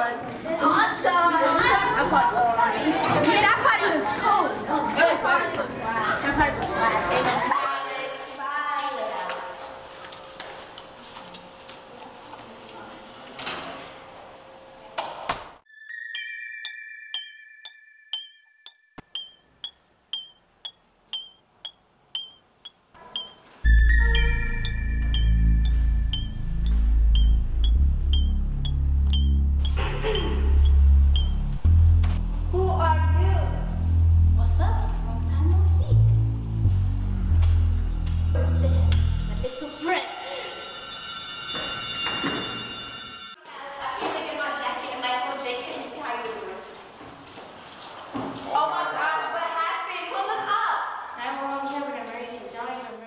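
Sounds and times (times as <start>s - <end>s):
clock ticking: 16.6s - 32.2s
low droning chord: 23.7s - 39.5s.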